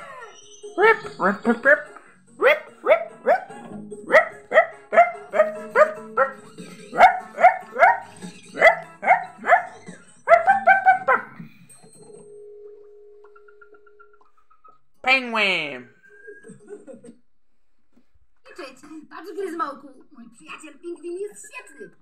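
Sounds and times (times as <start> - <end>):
cartoon music: 0.0 - 11.4
bark-like vocal calls: 0.8 - 11.5.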